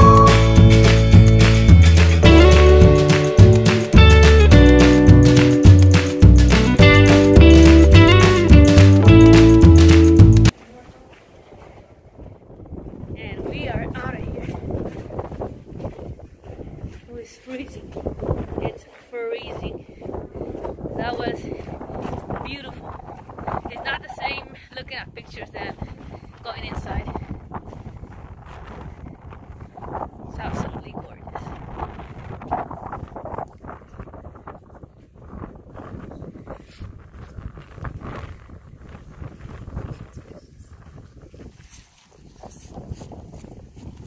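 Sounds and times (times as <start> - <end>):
wind buffeting microphone: 10.4 - 44.0.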